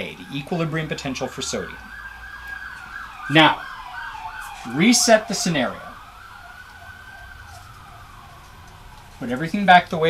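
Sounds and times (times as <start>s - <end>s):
faint siren-like wailing tone: 0.0s - 10.0s.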